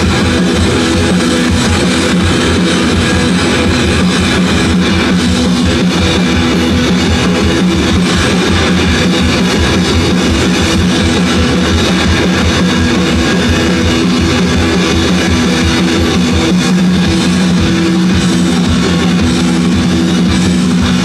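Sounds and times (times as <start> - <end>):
live rock band playing: 0.0 - 21.0.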